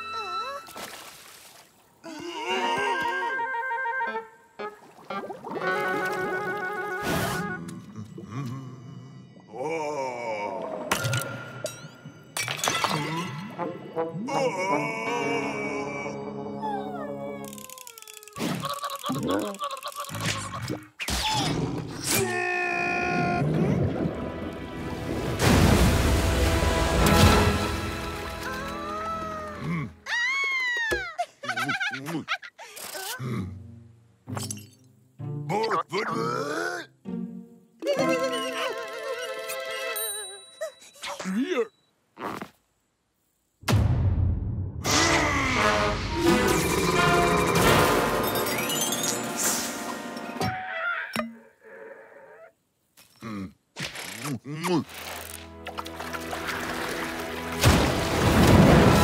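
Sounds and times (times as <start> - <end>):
background music: 2.6 - 17.8, 23.4 - 30.1, 33.2 - 40.5, 44.9 - 50.6, 55.1 - 59.0.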